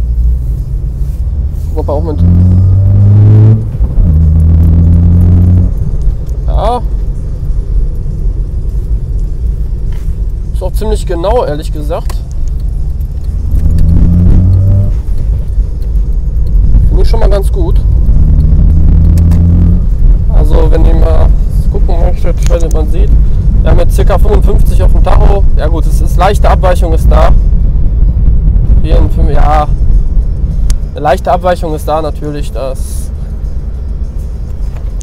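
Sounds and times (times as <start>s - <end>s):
car engine accelerating: 0.0s - 10.6s, 11.2s - 35.0s
road rumble: 0.0s - 35.0s.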